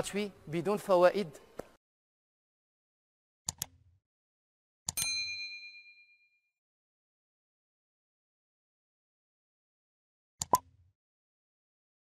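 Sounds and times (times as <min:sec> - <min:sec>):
mouse clicks: 0:03.5 - 0:03.8, 0:10.4 - 0:10.6.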